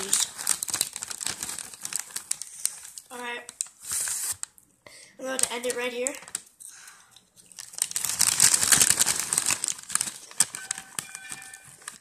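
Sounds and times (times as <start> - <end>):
crinkling and rustling: 0.0 - 4.6, 5.2 - 12.0.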